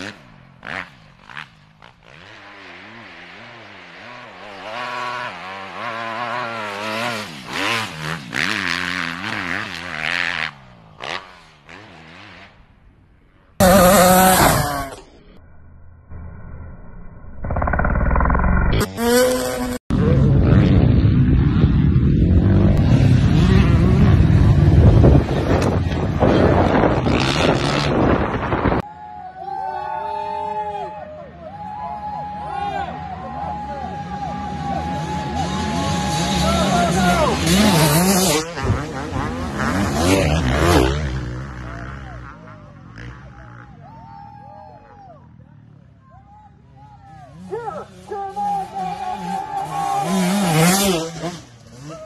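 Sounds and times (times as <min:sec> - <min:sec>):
dirt bike engine revving: 0:00.0 - 0:12.8, 0:13.6 - 0:15.3, 0:17.4 - 0:28.8, 0:32.9 - 0:43.6, 0:47.3 - 0:52.0.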